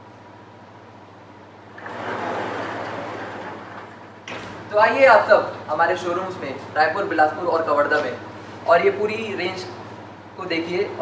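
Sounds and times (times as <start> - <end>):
low steady hum: 0.0 - 11.0
display panel rolling along track: 1.7 - 5.6.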